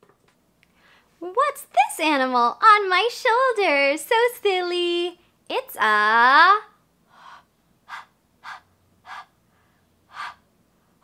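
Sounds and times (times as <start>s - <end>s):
person breathing puffs: 7.1s - 11.0s.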